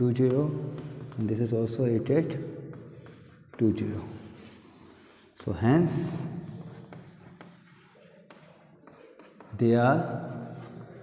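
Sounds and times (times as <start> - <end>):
chalk tapping: 0.0 - 11.0
chalk scratching on chalkboard: 0.1 - 11.0.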